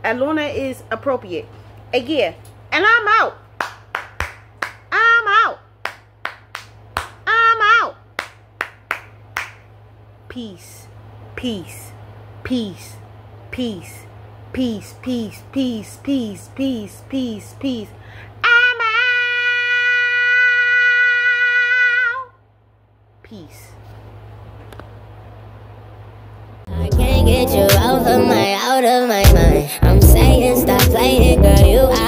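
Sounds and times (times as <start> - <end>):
person clapping hands: 3.6 - 4.9, 5.8 - 7.2, 8.2 - 9.6.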